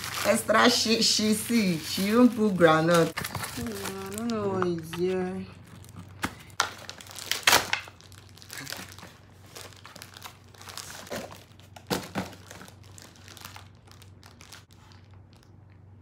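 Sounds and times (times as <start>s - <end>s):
paper crumpling and tearing: 0.0s - 4.6s, 5.7s - 15.4s.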